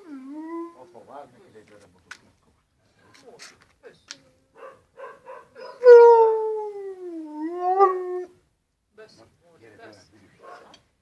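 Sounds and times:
dog whining: 0.0s - 0.8s
dog howling: 0.0s - 0.9s, 5.6s - 8.4s.

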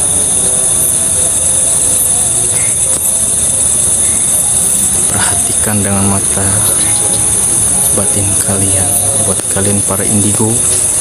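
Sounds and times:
night insects trilling: 0.0s - 11.0s.

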